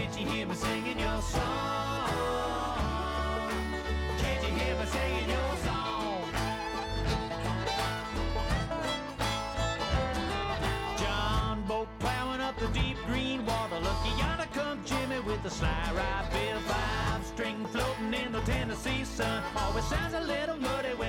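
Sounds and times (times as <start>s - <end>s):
acoustic string instruments: 0.0s - 21.0s.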